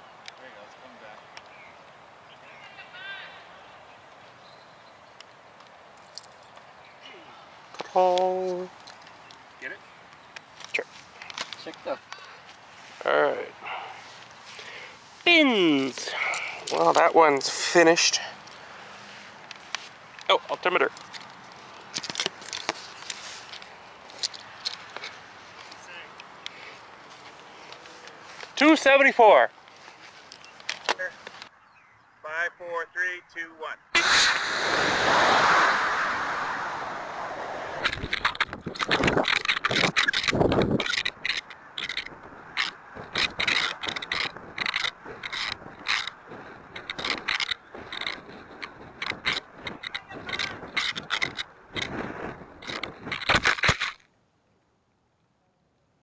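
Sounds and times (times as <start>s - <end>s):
light clicks and rustles: 5.2s - 6.7s, 7.7s - 13.0s, 18.4s - 20.3s, 20.9s - 28.6s, 29.6s - 31.5s, 37.8s - 54.1s
wind rush: 34.0s - 41.1s
camera and airframe rattling: 37.7s - 54.0s.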